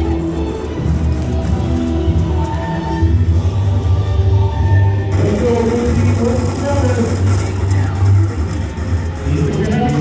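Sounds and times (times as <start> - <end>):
background music: 0.0 - 10.0
indistinct voices: 5.0 - 10.0.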